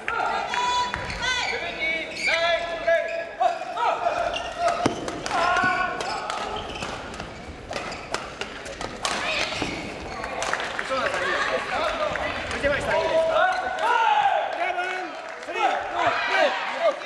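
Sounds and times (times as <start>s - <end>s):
shoes squeaking on court floor: 1.0s - 5.4s, 6.0s - 10.6s.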